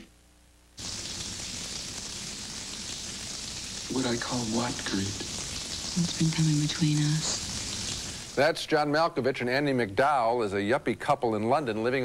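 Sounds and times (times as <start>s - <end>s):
shower running: 0.8s - 8.5s.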